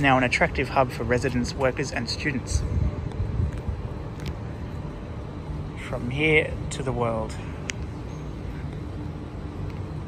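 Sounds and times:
distant traffic: 0.0 - 10.0
wind buffeting microphone: 1.4 - 5.9.

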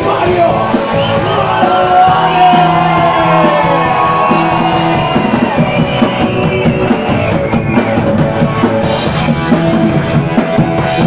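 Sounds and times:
bass guitar: 0.0 - 11.0
drum kit: 0.0 - 11.0
electric guitar: 0.0 - 11.0
shouted vocal: 1.2 - 5.1.

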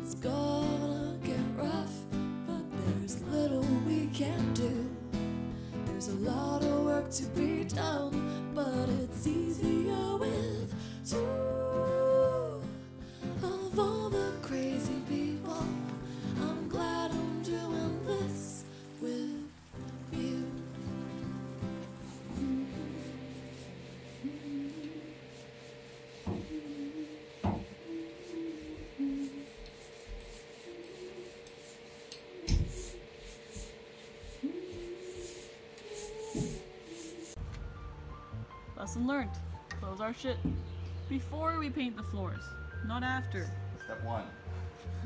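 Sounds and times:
song with acoustic guitar: 0.0 - 29.2
faint hum: 0.0 - 42.2
paint roller rubbing on metal: 13.4 - 37.4.

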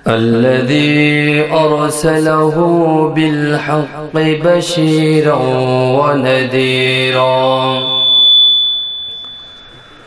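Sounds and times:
person chanting: 0.0 - 8.2
microphone feedback whistle: 6.7 - 10.0.

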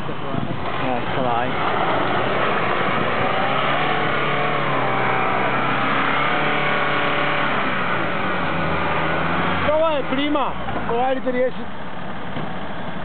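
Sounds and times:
engine revving under load: 0.0 - 11.2.

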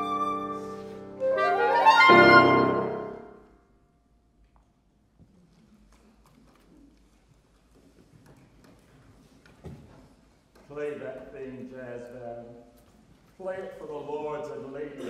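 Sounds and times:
clarinet playing rising run: 0.0 - 3.4
piano chord: 0.0 - 3.5
faint rustle of hall: 0.0 - 15.0.

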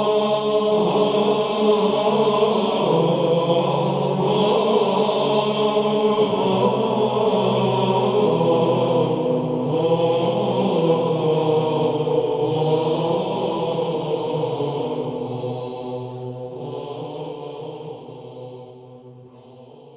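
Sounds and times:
voices chanting: 0.0 - 19.9.

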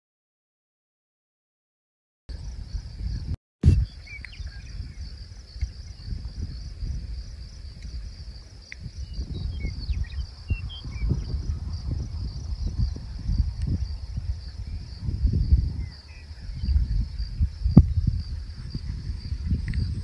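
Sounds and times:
high insect chorus: 2.3 - 20.0
wind buffeting microphone: 2.3 - 20.0
short bird chirps: 3.6 - 5.0.

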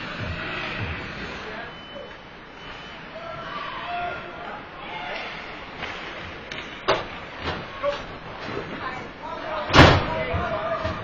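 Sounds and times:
loud bang against rink boards: 9.7 - 11.0.

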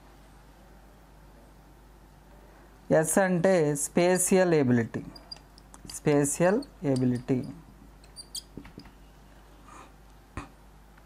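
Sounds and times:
marker squeaking on whiteboard: 5.1 - 5.5, 6.5 - 8.9.

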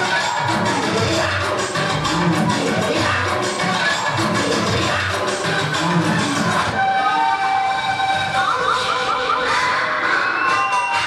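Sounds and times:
dance backing track: 0.0 - 11.0.

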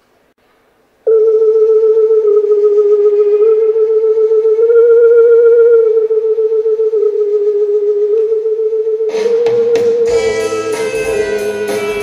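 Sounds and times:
sustained electronic tone: 1.0 - 12.0.

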